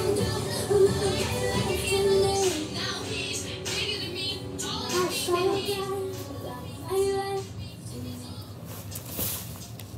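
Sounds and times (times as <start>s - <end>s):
music with singing voice: 0.0s - 9.9s.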